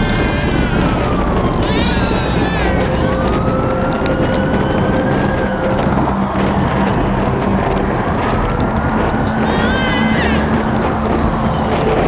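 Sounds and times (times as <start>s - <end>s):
loud dense noise: 0.0s - 12.0s
siren wailing: 0.0s - 12.0s.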